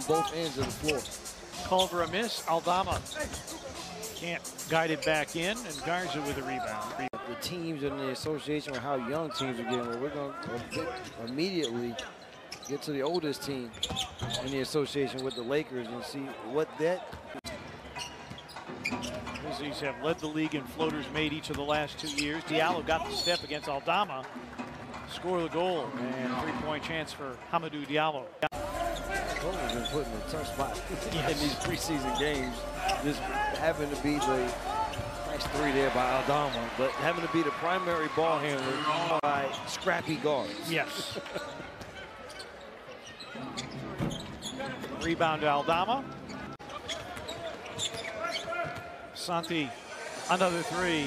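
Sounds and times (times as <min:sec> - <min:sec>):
low arena background: 0:00.0 - 0:12.0, 0:14.4 - 0:51.0
crowd murmur: 0:28.5 - 0:37.8.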